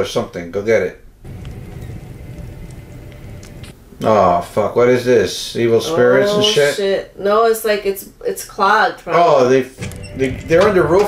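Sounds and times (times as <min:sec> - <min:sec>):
low rumbling drone: 0:01.2 - 0:03.8
faint clicks: 0:01.3 - 0:03.8.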